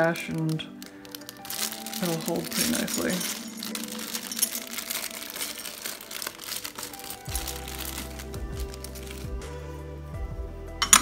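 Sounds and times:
plastic bag crinkling: 0:00.0 - 0:09.5
background music: 0:00.0 - 0:11.0.

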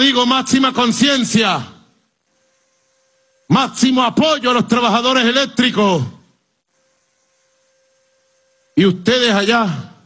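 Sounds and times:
man's voice: 0:00.0 - 0:01.9, 0:03.5 - 0:06.2, 0:08.8 - 0:10.0
faint steady hum: 0:00.0 - 0:10.0.

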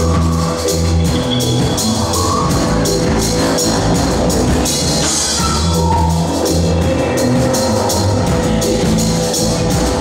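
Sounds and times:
drum kit: 0:00.0 - 0:10.0
live band playing amplified music: 0:00.0 - 0:10.0
low bass line: 0:00.0 - 0:10.0.

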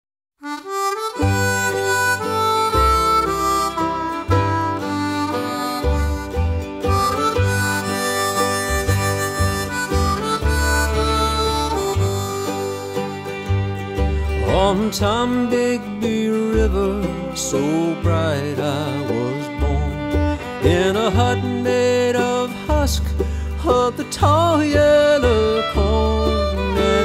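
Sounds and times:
harmonica melody: 0:00.4 - 0:27.0
backing band with bass line: 0:00.7 - 0:27.0.

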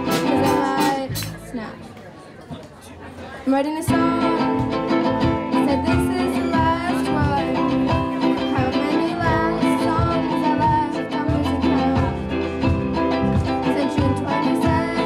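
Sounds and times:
person singing: 0:00.0 - 0:01.4, 0:03.6 - 0:15.0
steady drum beat: 0:00.0 - 0:01.8, 0:03.9 - 0:15.0
strummed ukulele and guitars: 0:00.0 - 0:02.8, 0:03.4 - 0:15.0.

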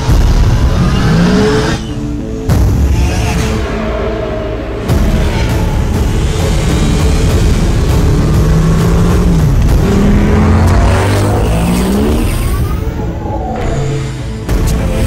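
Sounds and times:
film score music: 0:00.0 - 0:15.0.

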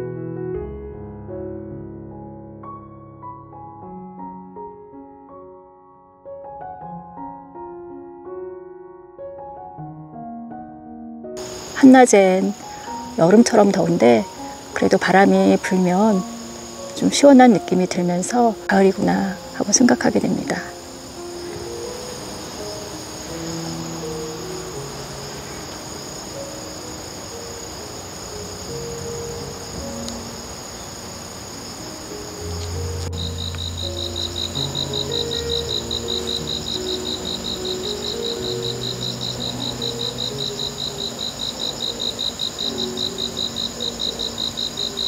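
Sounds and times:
insects trilling: 0:11.4 - 0:45.0
pulsing cricket chirp: 0:11.4 - 0:45.0.

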